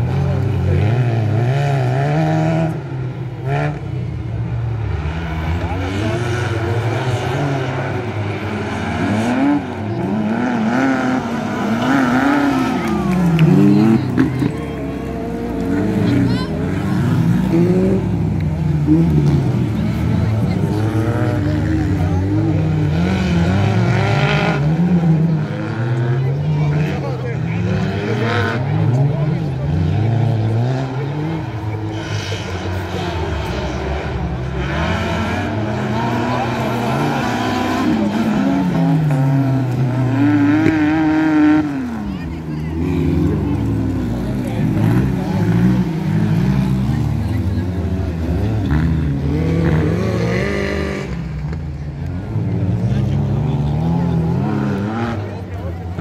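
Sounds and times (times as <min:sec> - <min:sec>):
buggy engine revving: 0:00.0 - 0:56.0.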